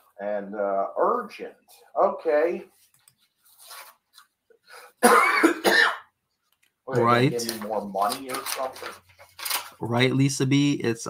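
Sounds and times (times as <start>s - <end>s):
person coughing: 5.0s - 6.1s.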